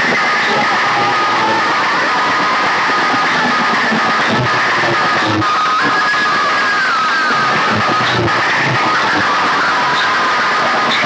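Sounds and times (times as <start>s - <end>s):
loud music through loudspeakers: 0.0s - 11.0s.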